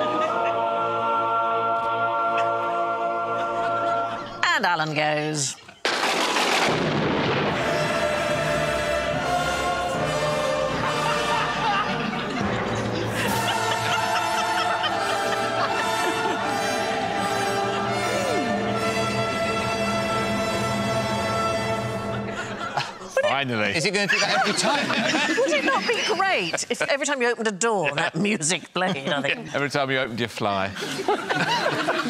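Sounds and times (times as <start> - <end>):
loud ringing boom: 5.9 - 8.0
music with long held notes: 7.3 - 23.0
orchestral strings holding chords: 7.4 - 23.6.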